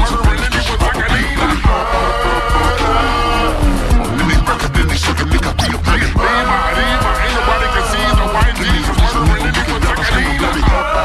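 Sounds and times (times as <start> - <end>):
slowed hip-hop beat: 3.6 - 10.8
turntable scratching: 3.9 - 9.3.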